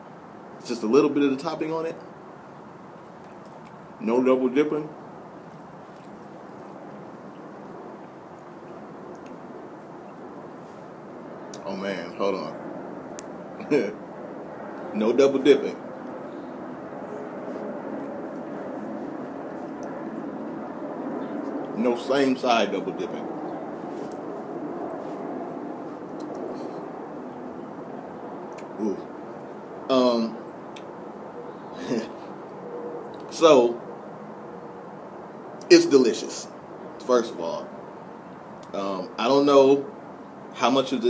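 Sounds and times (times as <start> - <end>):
distant city traffic hum: 0.0 - 41.0
outdoor background noise: 0.0 - 41.0.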